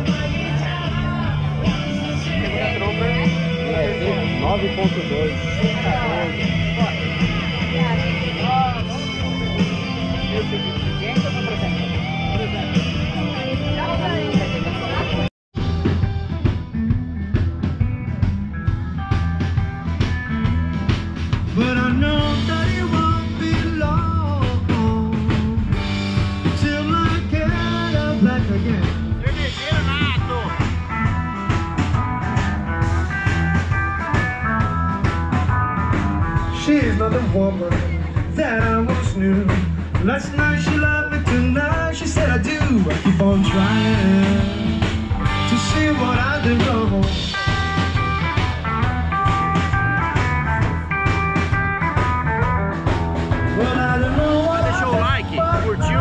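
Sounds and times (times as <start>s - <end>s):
bass guitar: 0.0s - 56.0s
drums: 0.0s - 56.0s
electric guitars: 0.0s - 56.0s.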